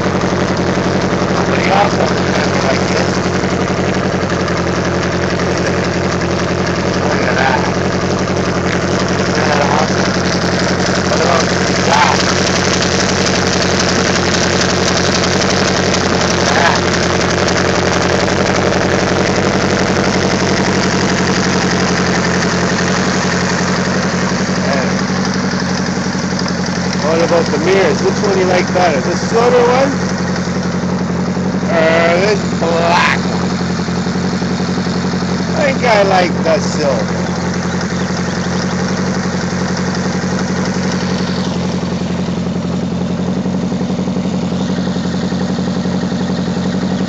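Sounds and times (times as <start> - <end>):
motorcycle engine idling: 0.0 - 47.0.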